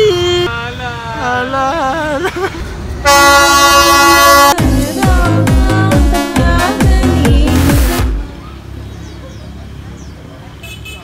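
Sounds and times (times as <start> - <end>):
train horn blast: 3.0 - 4.6
electronic dance music: 4.5 - 8.3.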